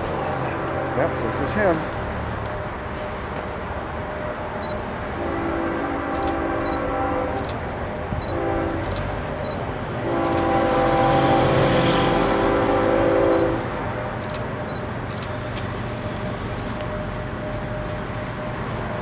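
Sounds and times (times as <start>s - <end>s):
low rumble of train: 0.0s - 19.0s
locomotive air horn blasts: 0.2s - 1.9s, 4.0s - 9.1s, 9.9s - 13.8s.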